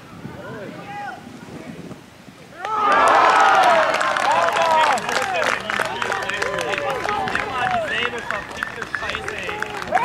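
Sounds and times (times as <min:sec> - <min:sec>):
people shouting: 0:02.6 - 0:07.9
handclaps: 0:03.6 - 0:10.0.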